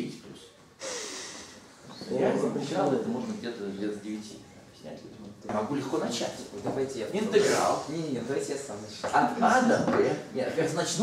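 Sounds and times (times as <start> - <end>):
person breathy exhale: 0.8 - 1.6.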